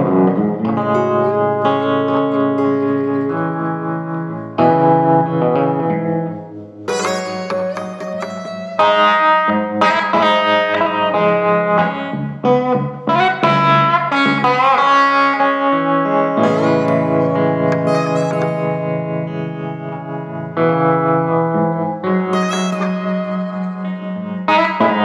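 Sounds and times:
electric blues guitar: 0.0s - 25.0s.

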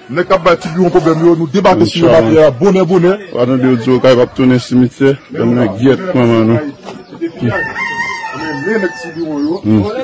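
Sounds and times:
man's voice: 0.0s - 7.8s, 8.4s - 10.0s
rooster crowing: 7.4s - 9.5s.

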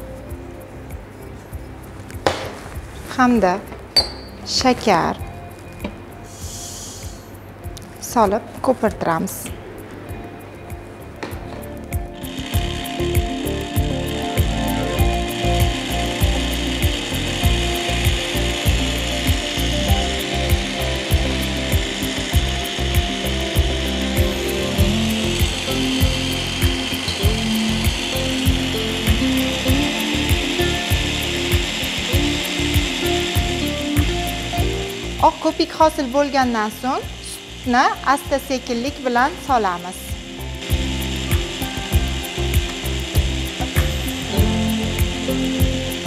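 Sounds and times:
electric stand mixer running: 11.6s - 46.0s.

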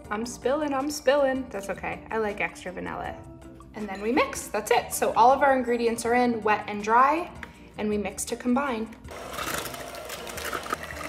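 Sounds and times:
electric hand mixer whirring: 9.1s - 11.0s.

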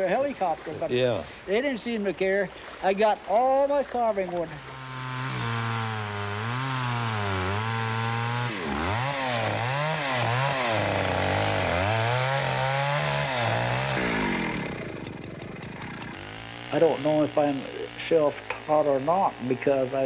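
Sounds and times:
chainsaw revving: 4.5s - 20.0s.

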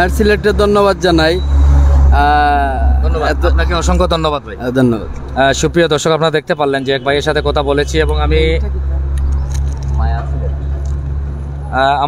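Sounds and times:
road noise: 0.0s - 12.0s
vehicle engine hum: 0.0s - 12.0s.

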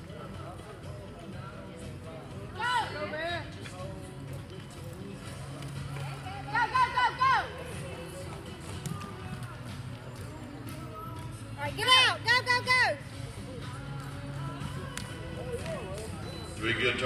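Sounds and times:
low arena hum: 0.0s - 17.0s.

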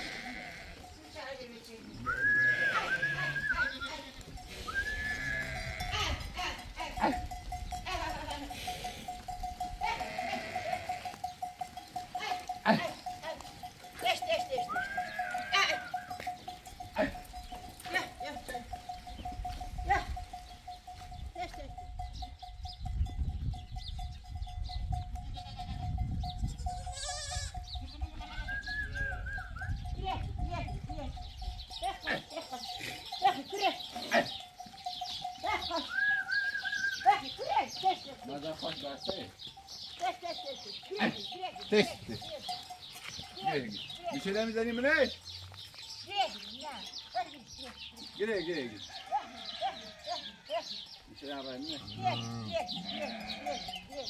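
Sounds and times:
sheep and goats bleating: 0.0s - 23.2s, 24.0s - 54.0s.

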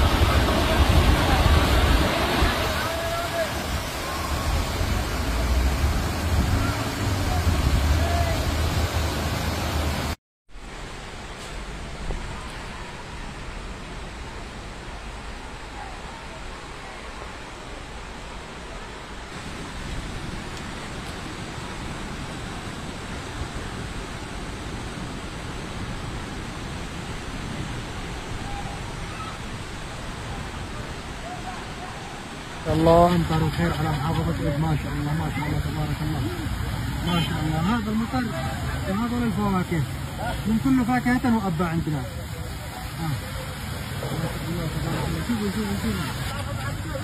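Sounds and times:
floodwater rushing down a street: 0.0s - 47.0s
low rumble of traffic in water: 0.0s - 47.0s.

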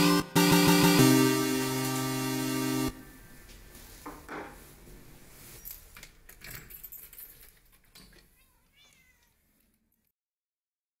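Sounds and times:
electronic remix music: 0.0s - 3.0s
cat meowing: 8.4s - 9.4s.

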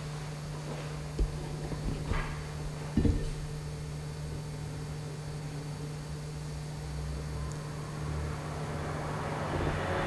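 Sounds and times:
room hum and hiss: 0.0s - 10.0s
dull thumps: 1.1s - 3.8s.

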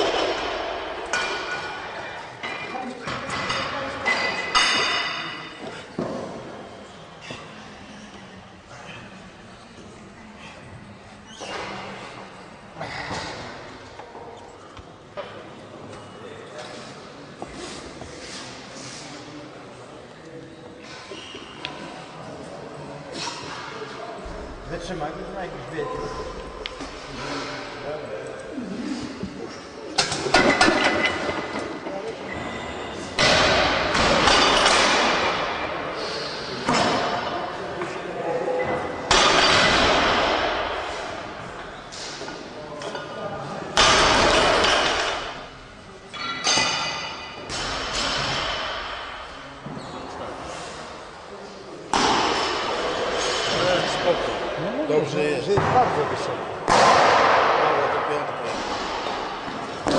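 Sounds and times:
barbell plates thudding and clinking: 0.0s - 5.4s, 33.2s - 35.6s, 39.1s - 40.6s.

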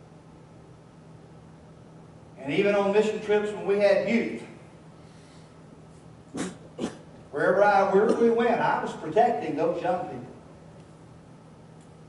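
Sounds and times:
sharp breaths into microphone: 5.0s - 5.6s.

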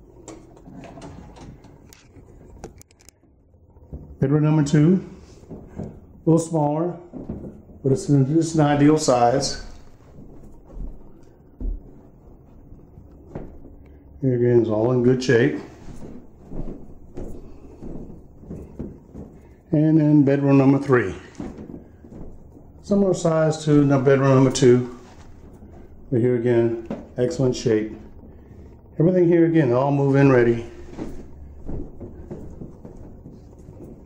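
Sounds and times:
low room hum: 0.0s - 34.0s
footsteps on carpet: 5.0s - 14.1s, 14.7s - 28.8s, 30.1s - 34.0s.

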